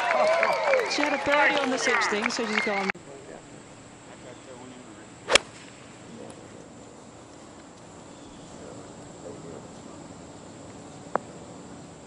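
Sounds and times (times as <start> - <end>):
faint background noise: 0.0 - 12.0
golf club striking ball: 5.3 - 5.9.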